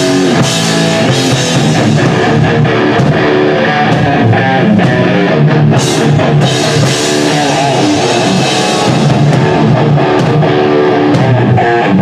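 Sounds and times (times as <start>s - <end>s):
distorted electric guitar riffing: 0.0s - 12.0s
drums: 0.0s - 12.0s.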